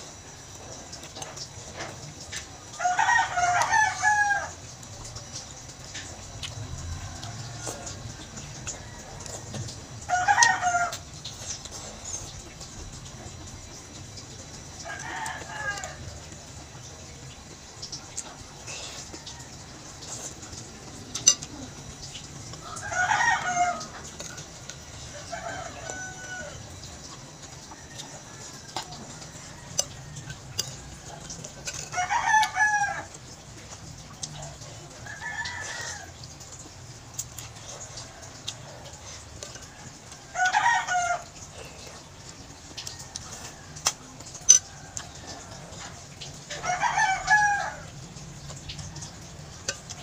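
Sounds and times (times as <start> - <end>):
rooster crowing: 2.7 - 5.4, 6.5 - 11.1, 14.7 - 16.4, 22.6 - 33.4, 34.4 - 36.4, 37.4 - 42.0, 42.8 - 50.0.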